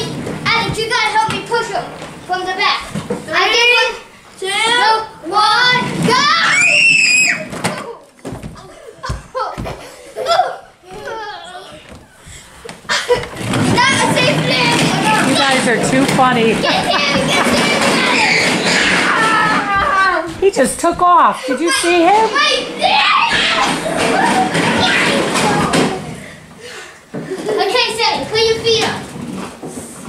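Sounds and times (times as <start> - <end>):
children shrieking and shouting: 3.4 - 8.0, 13.7 - 15.4, 16.6 - 20.4, 21.4 - 26.3
knocks and thuds: 13.1 - 21.0.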